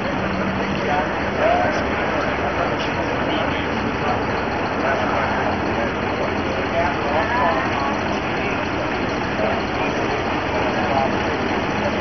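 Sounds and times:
indistinct voices talking: 0:00.0 - 0:12.0
steady background noise: 0:00.0 - 0:12.0.

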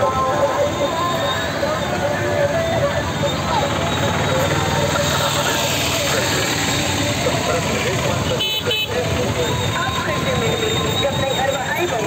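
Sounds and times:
people talking and calling: 0:00.0 - 0:12.0
vehicle engines running: 0:00.0 - 0:12.0.

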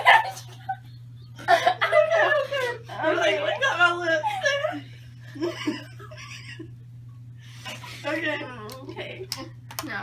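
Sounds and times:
girls laughing: 0:00.0 - 0:06.8.

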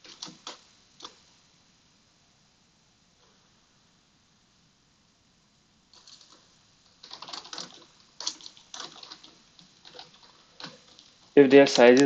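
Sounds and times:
computer keyboard typing: 0:00.0 - 0:01.2, 0:05.9 - 0:12.0.

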